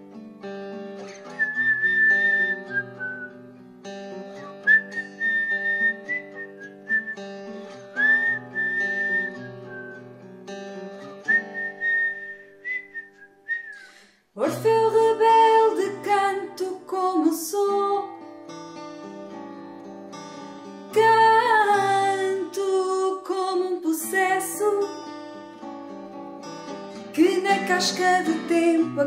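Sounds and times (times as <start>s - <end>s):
guitar picking chords: 0.0s - 13.0s, 14.5s - 29.0s
whistled melody: 1.1s - 3.4s, 4.3s - 10.1s, 11.0s - 13.9s.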